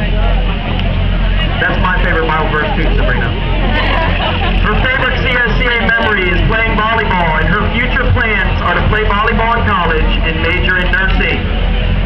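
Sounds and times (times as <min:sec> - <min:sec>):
crowd chatter: 0:00.0 - 0:12.0
low rumble: 0:00.0 - 0:12.0
man announcing over loudspeaker: 0:01.5 - 0:03.4, 0:04.6 - 0:11.5.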